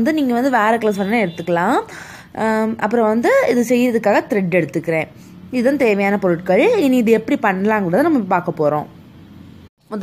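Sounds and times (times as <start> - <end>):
woman speaking: 0.0 - 9.0, 9.8 - 10.0.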